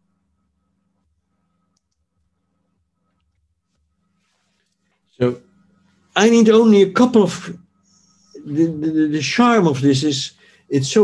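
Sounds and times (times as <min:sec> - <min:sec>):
faint computer mouse clicks: 0:01.7 - 0:02.0.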